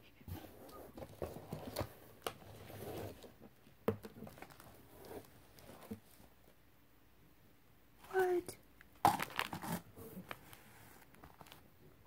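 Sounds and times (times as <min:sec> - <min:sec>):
packaging crinkling: 0:04.2 - 0:04.8, 0:09.1 - 0:11.6.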